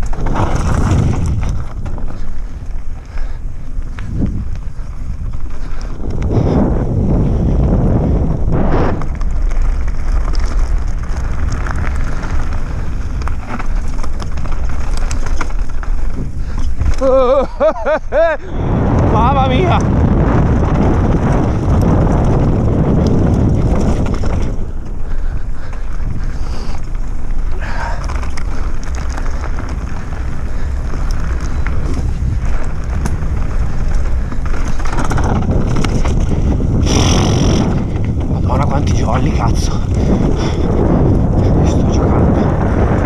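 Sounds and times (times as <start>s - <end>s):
bike rattles and clicks: 0.0s - 43.0s
tyres rolling over gravel: 0.0s - 43.0s
wind buffeting microphone: 0.0s - 43.0s.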